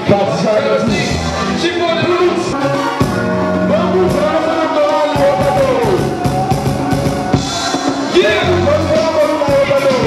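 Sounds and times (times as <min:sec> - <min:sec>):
live band music: 0:00.0 - 0:10.0
man singing: 0:07.9 - 0:10.0.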